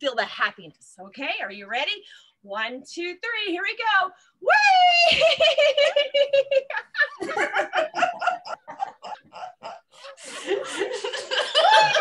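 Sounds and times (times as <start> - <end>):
person laughing: 5.1 - 12.0.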